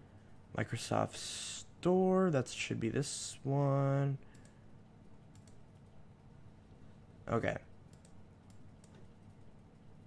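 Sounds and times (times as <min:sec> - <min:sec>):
low room noise: 0:00.0 - 0:10.0
keyboard and mouse clicks: 0:04.3 - 0:04.6, 0:05.3 - 0:05.6, 0:07.9 - 0:09.5.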